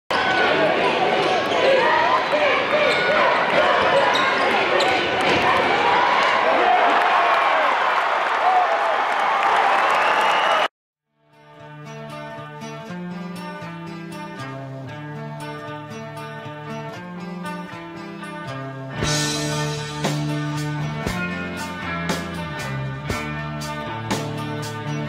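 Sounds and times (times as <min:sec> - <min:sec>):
loud crowd noise and voices: 0:00.1 - 0:10.7.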